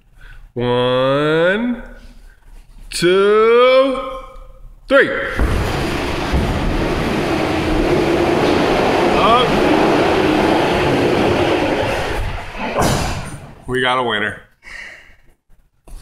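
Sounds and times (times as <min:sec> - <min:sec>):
cart wheels rolling on concrete: 0:05.4 - 0:12.8.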